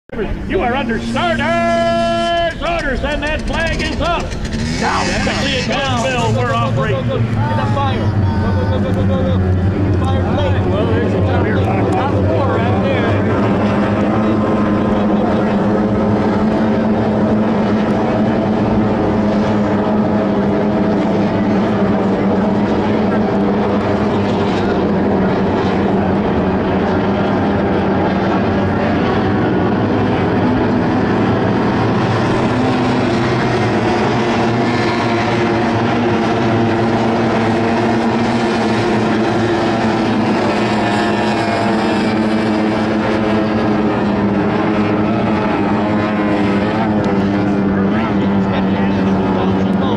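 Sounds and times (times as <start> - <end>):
powerboat engines droning: 0.1 - 49.9.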